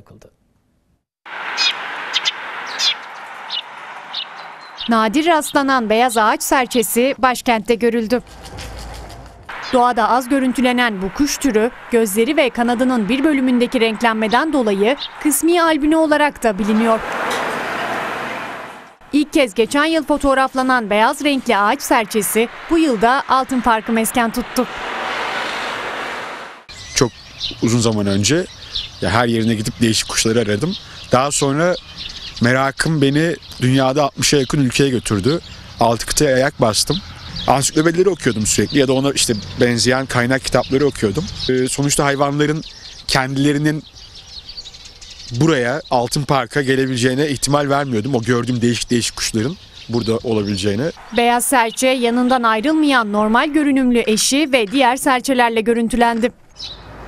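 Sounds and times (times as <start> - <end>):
outdoor background noise: 0.0 - 57.0
sparrows chirping: 1.5 - 18.1, 19.1 - 25.8, 26.7 - 57.0
steady rushing noise: 8.2 - 19.0, 21.0 - 26.7.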